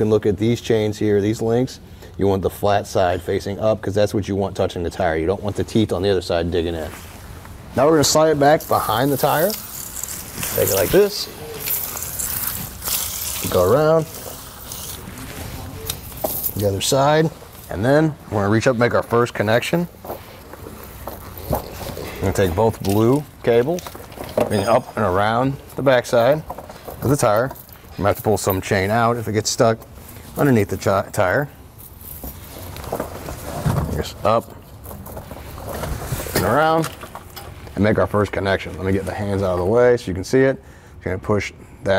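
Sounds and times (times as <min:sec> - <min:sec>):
chain dragging on concrete: 0:08.0 - 0:37.7.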